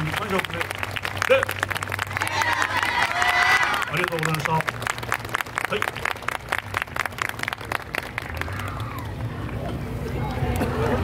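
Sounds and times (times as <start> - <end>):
audience applause: 0.0 - 9.2
crowd chatter: 8.2 - 11.0.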